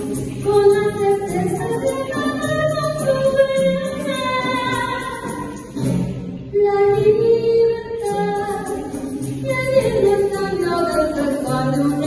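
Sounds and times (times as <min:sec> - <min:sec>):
live band with guitar and percussion: 0:00.0 - 0:12.0
woman singing into microphone: 0:00.3 - 0:05.6, 0:06.5 - 0:12.0.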